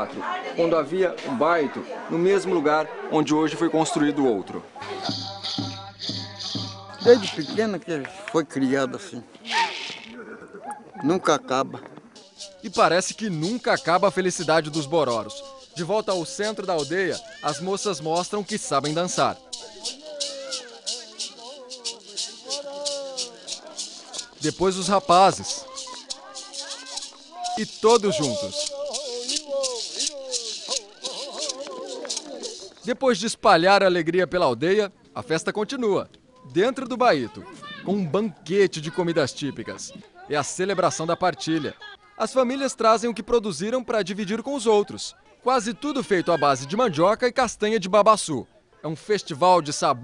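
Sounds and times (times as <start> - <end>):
rattles shaken: 5.0 - 7.7, 9.5 - 10.2, 12.2 - 33.3
low voice chanting: 19.0 - 24.4, 25.4 - 32.8.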